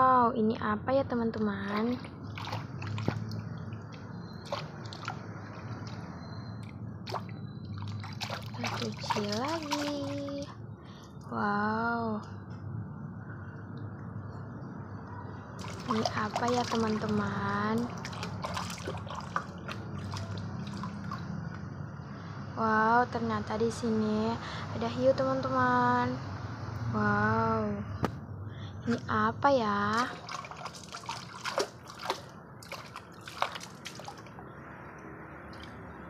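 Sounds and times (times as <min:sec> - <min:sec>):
water sloshing in a bucket: 0:01.4 - 0:10.6, 0:15.6 - 0:21.6, 0:29.7 - 0:36.0
hand scrubbing toy in water: 0:01.6 - 0:06.2, 0:07.1 - 0:10.5, 0:15.6 - 0:21.3, 0:29.9 - 0:34.4
small splashes and drips: 0:01.7 - 0:10.6, 0:15.6 - 0:21.6, 0:29.9 - 0:36.0.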